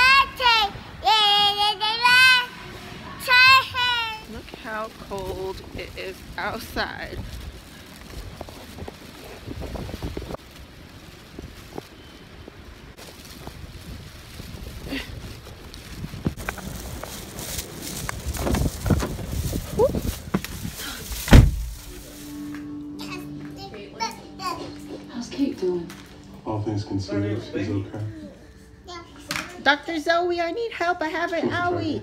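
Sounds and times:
wind buffeting microphone: 0:04.2 - 0:22.0
loud thump: 0:21.2 - 0:21.9.

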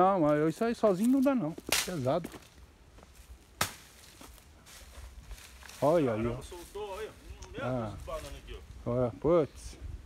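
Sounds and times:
machete blade chop: 0:03.6 - 0:03.8.

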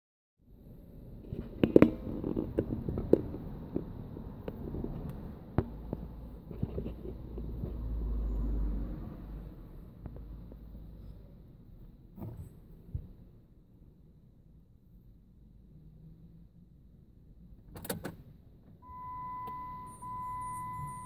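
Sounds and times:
car road and engine rumble: 0:00.4 - 0:21.0.

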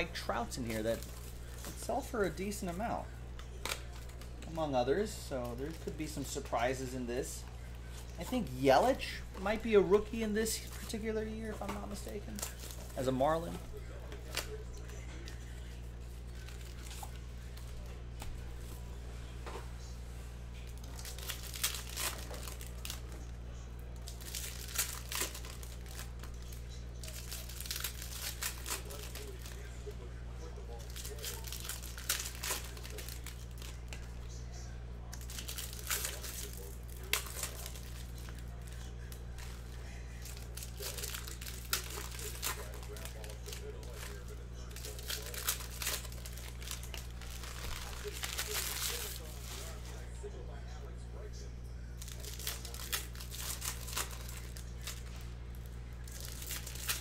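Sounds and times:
foil wrappers crinkling: 0:00.0 - 0:18.8, 0:20.6 - 0:50.3, 0:52.0 - 0:57.0.

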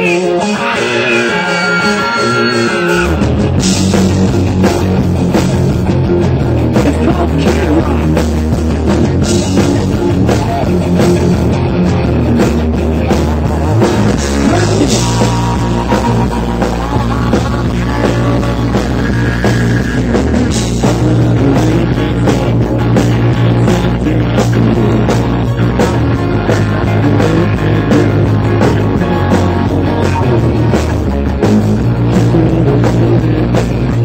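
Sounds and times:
live rock band playing: 0:00.0 - 0:34.0
sustained high guitar notes: 0:00.0 - 0:34.0.

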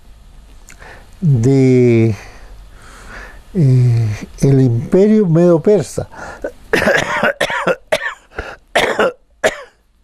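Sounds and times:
man coughing: 0:06.2 - 0:09.8.

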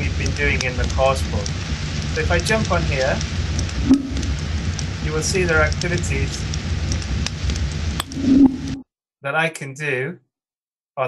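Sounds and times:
background hiss and hum: 0:00.0 - 0:08.8.

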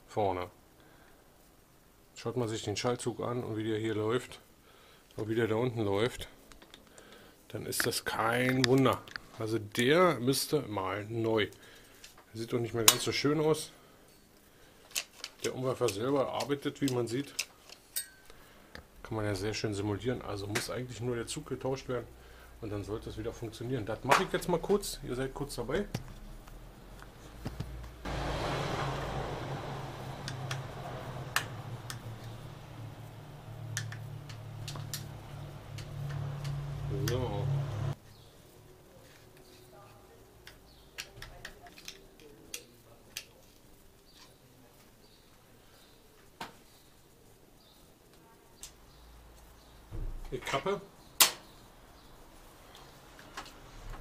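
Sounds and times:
low hum with hiss: 0:00.0 - 0:54.0.

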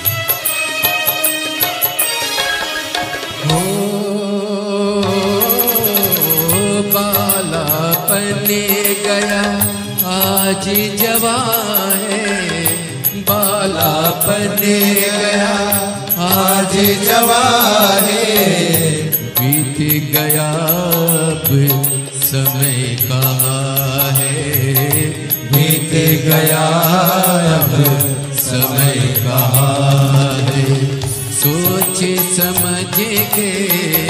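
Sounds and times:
devotional music: 0:00.0 - 0:34.0.

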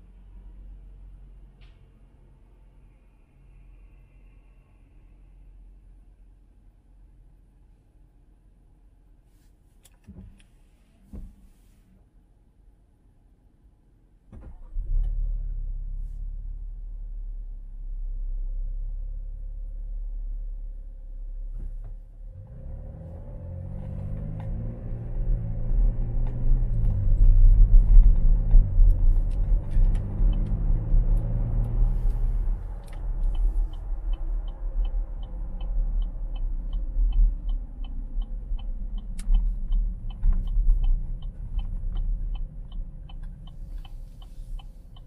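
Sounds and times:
low road noise: 0:00.0 - 0:45.0
car engine accelerating: 0:21.3 - 0:45.0.

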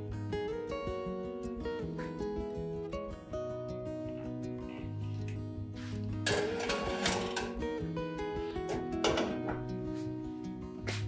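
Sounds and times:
background music: 0:00.0 - 0:11.0
metal tray scraping on wire rack: 0:06.3 - 0:07.6.

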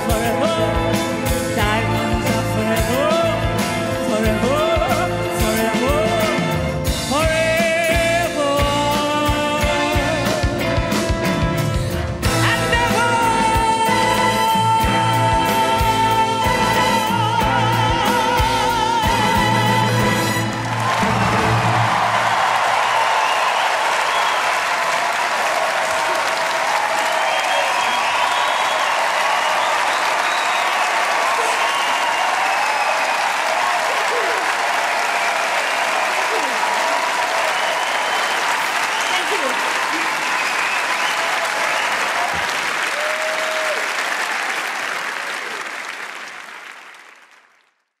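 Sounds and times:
audience applauding: 0:00.0 - 0:48.0.

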